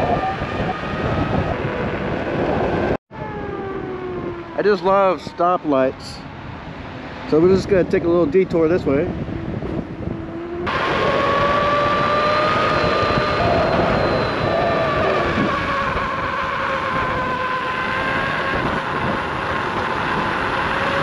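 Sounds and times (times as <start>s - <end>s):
electric motor whining: 10.0s - 21.0s.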